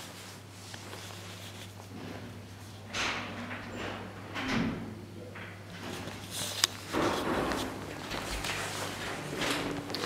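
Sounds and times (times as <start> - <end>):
shuffling footsteps: 6.0 - 10.0.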